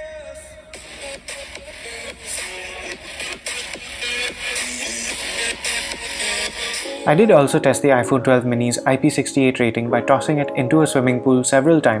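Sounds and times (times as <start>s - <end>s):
electronic dance music on phone speaker: 0.0s - 11.4s.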